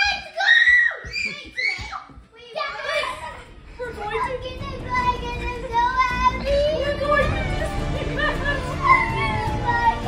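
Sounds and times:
children chattering excitedly: 0:01.1 - 0:10.0.

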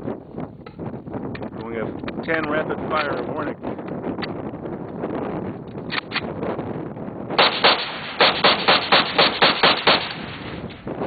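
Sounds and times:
rifle gunshots: 0:07.4 - 0:10.6.

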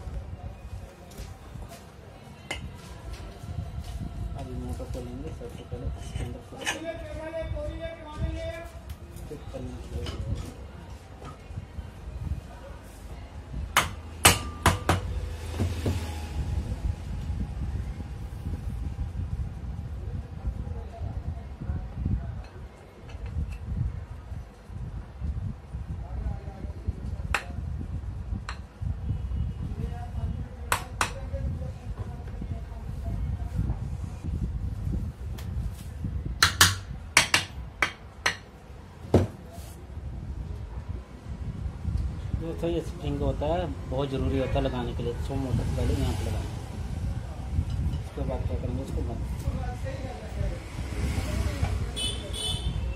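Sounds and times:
hammer tapping metal: 0:13.8 - 0:15.1, 0:36.4 - 0:38.5.

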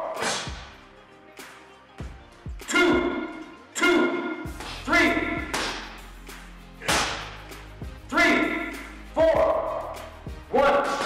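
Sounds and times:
steady music bed: 0:00.0 - 0:11.0.

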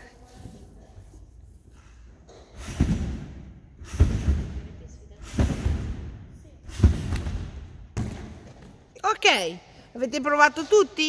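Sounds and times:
trampoline thuds: 0:02.4 - 0:08.9.

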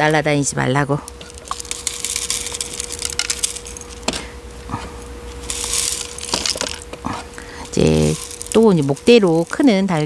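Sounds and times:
grains clicking: 0:00.0 - 0:10.0
grit trickling onto soil: 0:07.7 - 0:10.0.

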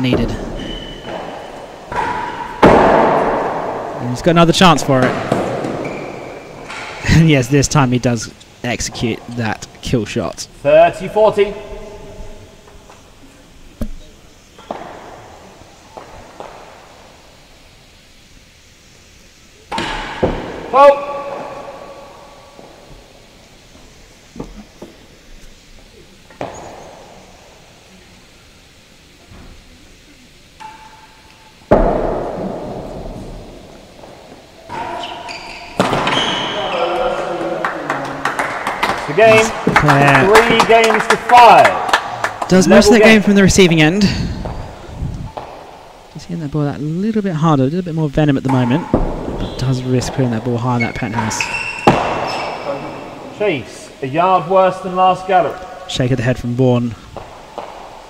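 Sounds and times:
ball knocking off racquets and walls: 0:00.0 - 0:04.0, 0:04.9 - 0:07.2, 0:13.8 - 0:17.0, 0:19.7 - 0:22.0, 0:26.3 - 0:27.3, 0:31.7 - 0:37.4, 0:44.4 - 0:46.0, 0:48.5 - 0:50.2, 0:51.3 - 0:53.2, 0:57.1 - 0:58.0.

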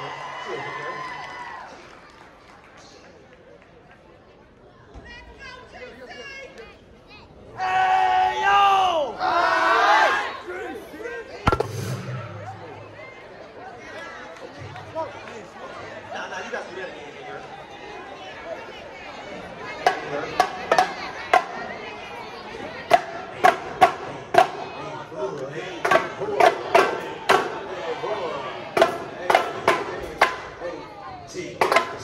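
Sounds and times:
crowd chatter: 0:00.0 - 0:32.0
young voices chanting together: 0:07.6 - 0:10.6
sharp drum hits: 0:11.5 - 0:13.0.

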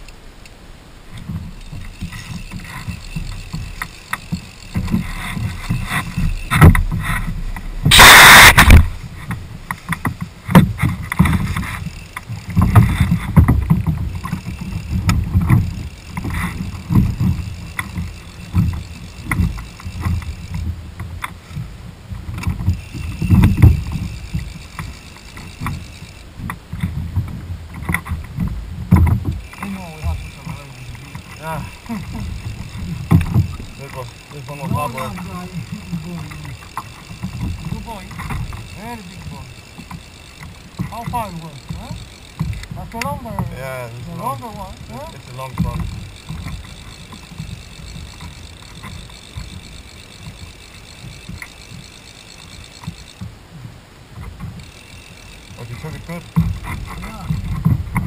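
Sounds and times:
loud harsh noise burst: 0:06.2 - 0:09.0.

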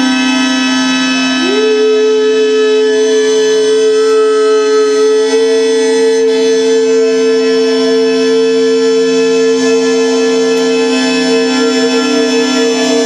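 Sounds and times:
low drone: 0:00.0 - 0:13.0
man singing sustained note: 0:00.0 - 0:13.0.

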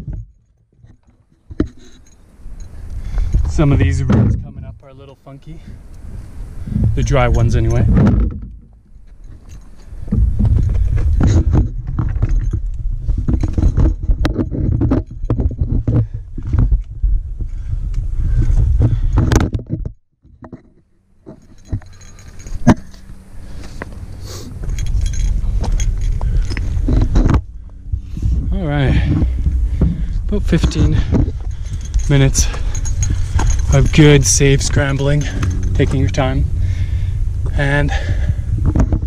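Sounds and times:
wind rumble on microphone: 0:00.0 - 0:20.5, 0:21.3 - 0:39.0.

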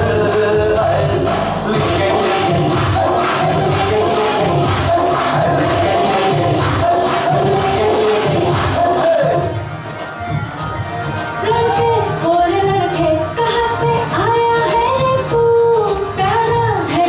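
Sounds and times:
person singing: 0:00.0 - 0:09.6
dance music over loudspeaker: 0:00.0 - 0:17.0.

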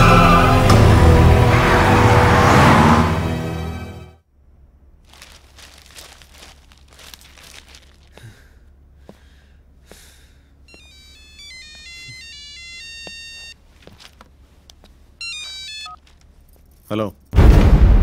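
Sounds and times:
phone ringtone beeping melody: 0:10.7 - 0:13.6, 0:15.2 - 0:16.0.

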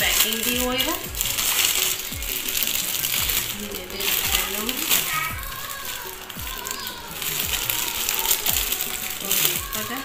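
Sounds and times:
background music with low beat: 0:00.0 - 0:10.0
bangles clinking: 0:00.0 - 0:10.0
plastic wrapping crinkling: 0:00.0 - 0:10.0.

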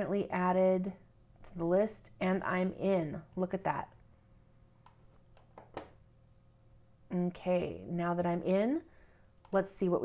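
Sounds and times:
computer mouse clicks: 0:04.8 - 0:05.9.

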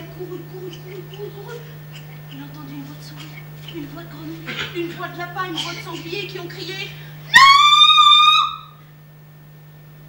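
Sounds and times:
person shouting in squeaky voice: 0:07.4 - 0:08.7.

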